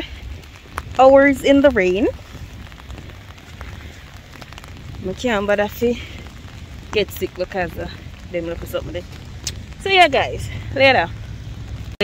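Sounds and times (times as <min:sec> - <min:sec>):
low rumble: 0:00.0 - 0:12.0
rain on fabric umbrella: 0:00.0 - 0:12.0.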